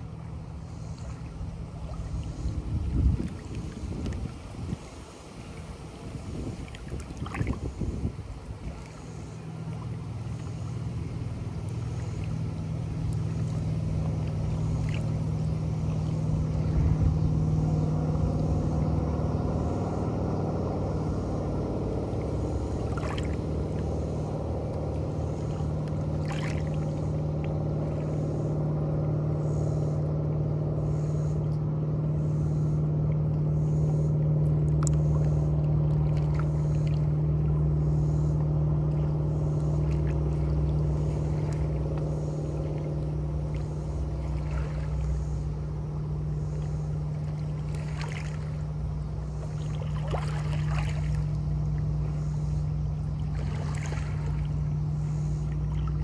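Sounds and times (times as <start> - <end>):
motorboat engine drone: 0.0 - 56.0
small water splashes: 0.0 - 56.0
water lapping against boulders: 0.0 - 56.0.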